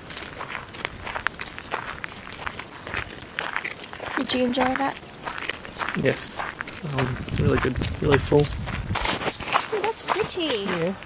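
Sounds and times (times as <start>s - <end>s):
footsteps walking: 0.0s - 11.0s.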